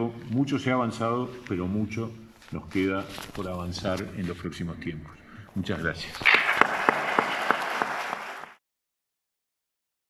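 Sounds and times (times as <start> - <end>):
audience applause: 6.2 - 8.6
close sharp claps: 6.2 - 8.6.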